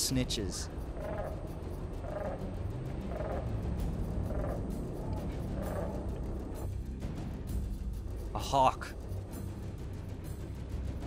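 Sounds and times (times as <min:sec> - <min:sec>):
crow cawing: 0:00.8 - 0:06.7.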